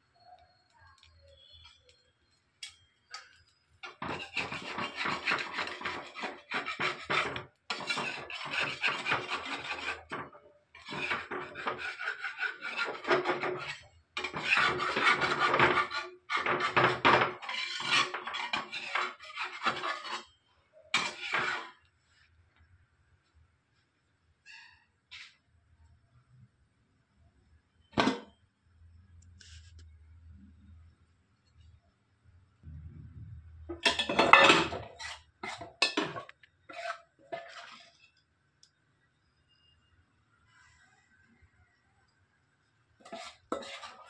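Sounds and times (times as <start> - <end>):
spatula scraping clay griddle: 3.1 - 21.9, 24.4 - 25.4, 33.7 - 38.2, 43.0 - 44.0.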